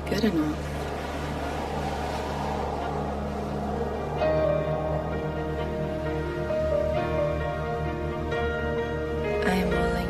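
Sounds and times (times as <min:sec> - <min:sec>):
ocean surf rushing: 0:00.0 - 0:09.4
background music drone: 0:00.0 - 0:10.0.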